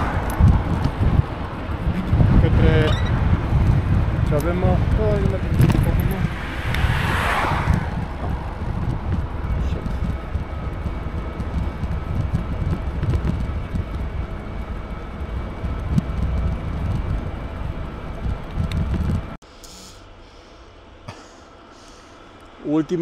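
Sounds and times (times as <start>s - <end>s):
wind and road noise: 0.0s - 23.0s.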